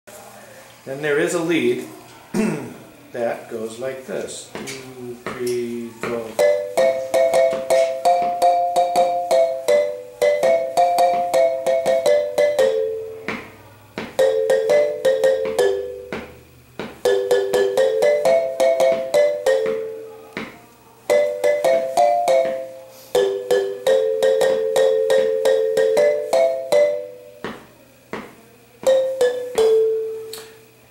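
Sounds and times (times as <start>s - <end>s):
marimba melody: 6.0s - 27.6s, 28.8s - 30.6s.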